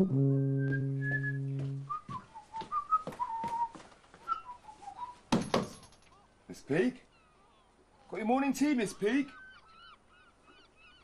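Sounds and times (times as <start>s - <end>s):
low held musical note: 0.0s - 1.9s
person whistling a tune: 0.4s - 5.2s.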